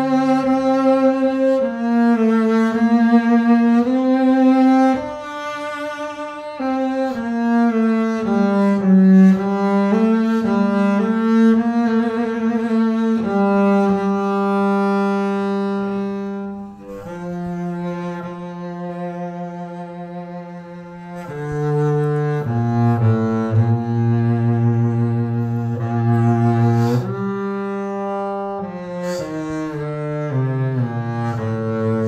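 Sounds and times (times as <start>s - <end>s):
bowed double bass melody: 0.0s - 32.0s.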